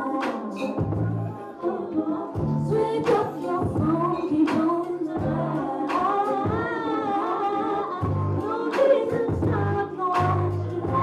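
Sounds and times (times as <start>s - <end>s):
woman singing: 0.0s - 11.0s
deep bass accompaniment: 0.7s - 1.4s, 2.4s - 4.4s, 5.2s - 5.8s, 8.0s - 8.5s, 9.1s - 11.0s.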